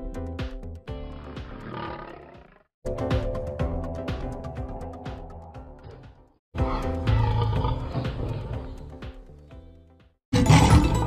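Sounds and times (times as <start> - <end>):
music: 0.0 - 11.0
lion calling: 1.2 - 2.7, 3.7 - 9.0.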